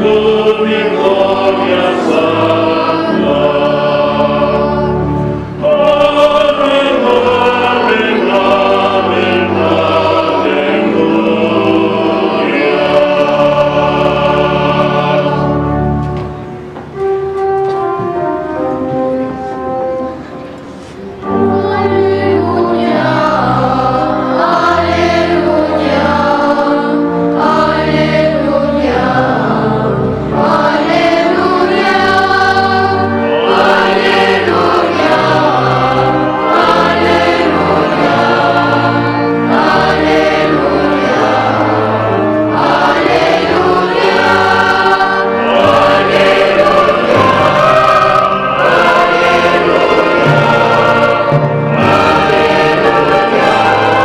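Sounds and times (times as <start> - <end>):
choir singing a chant: 0.0 - 16.0, 21.2 - 54.0
instrumental accompaniment: 0.0 - 54.0.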